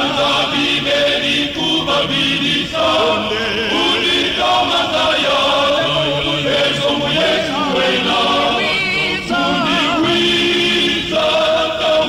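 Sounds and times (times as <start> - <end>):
men's choir singing: 0.0 - 12.0.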